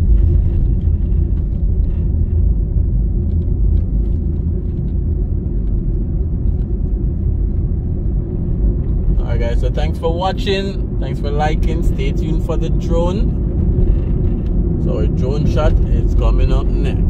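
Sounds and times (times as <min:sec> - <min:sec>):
car engine and tyre noise: 0:00.0 - 0:17.0.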